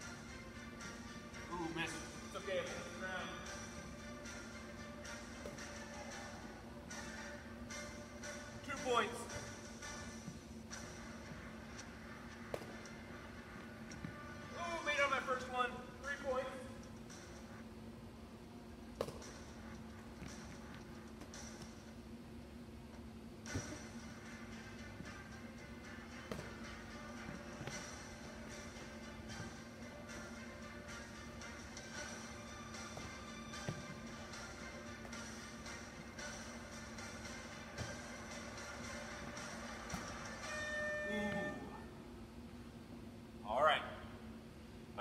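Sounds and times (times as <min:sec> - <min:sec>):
background music: 0:00.0 - 0:42.4
steady low hum: 0:00.0 - 0:45.0
steady high tone: 0:40.4 - 0:41.9.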